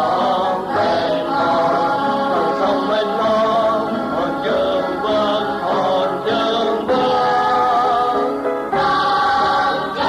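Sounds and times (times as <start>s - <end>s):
choir singing held notes: 0.0s - 10.0s
musical accompaniment: 0.0s - 10.0s.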